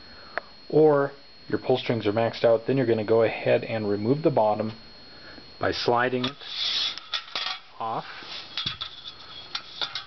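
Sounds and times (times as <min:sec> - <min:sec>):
part scraping along blind rail: 0:06.3 - 0:07.4, 0:08.4 - 0:10.0.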